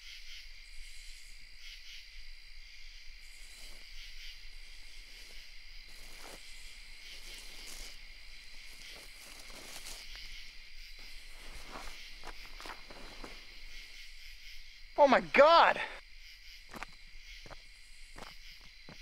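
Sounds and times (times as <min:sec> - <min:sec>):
crickets chirping: 0:00.0 - 0:19.0
soft rustling steps: 0:04.5 - 0:14.0.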